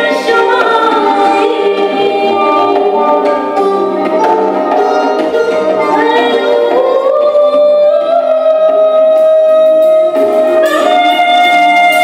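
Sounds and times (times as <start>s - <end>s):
bowed kamancha: 0.0s - 12.0s
woman singing: 0.0s - 12.0s.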